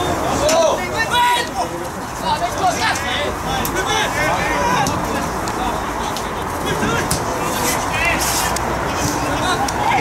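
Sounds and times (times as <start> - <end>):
distant players shouting: 0.0 - 6.0.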